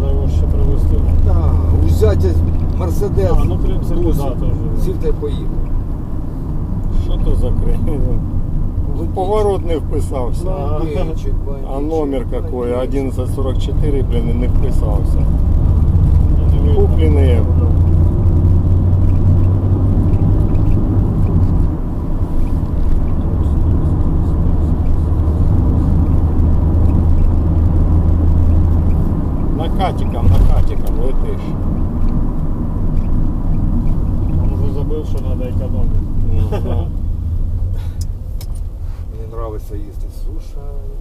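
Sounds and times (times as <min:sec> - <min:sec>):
car engine and tyre drone: 0:00.0 - 0:41.0
low thump: 0:30.2 - 0:31.0.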